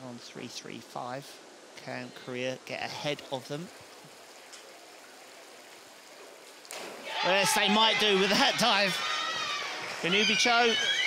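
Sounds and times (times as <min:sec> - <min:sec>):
faint water rush: 0:00.0 - 0:11.0.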